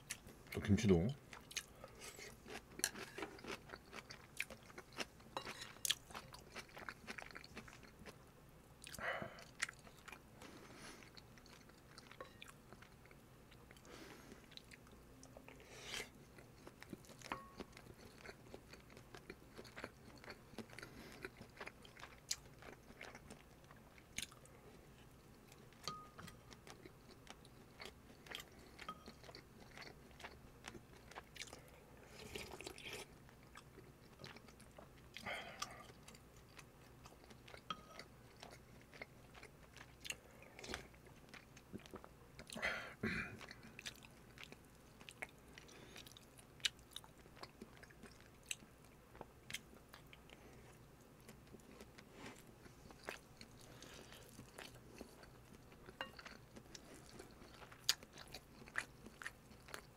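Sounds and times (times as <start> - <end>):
chewing with wet mouth clicks: 1.3 - 8.2, 8.8 - 10.2, 11.0 - 15.6, 16.3 - 24.5, 25.1 - 42.6, 43.4 - 59.9.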